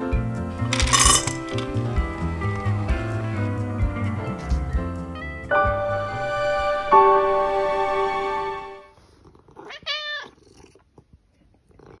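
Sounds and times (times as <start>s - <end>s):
held music chord: 1.6s - 8.9s
cat meowing: 9.6s - 10.4s.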